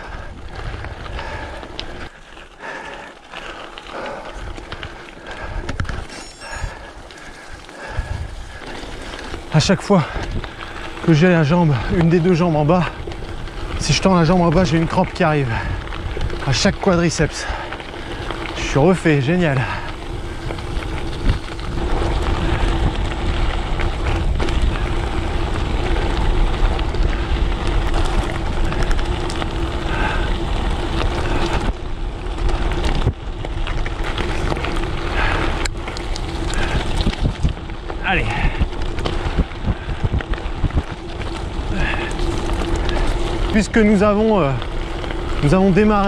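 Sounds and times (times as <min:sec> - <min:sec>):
bike tyres crunching on gravel: 0:00.0 - 0:46.0
wind noise on microphone: 0:07.8 - 0:11.1, 0:19.6 - 0:45.6
rider vocal sounds: 0:38.0 - 0:38.8.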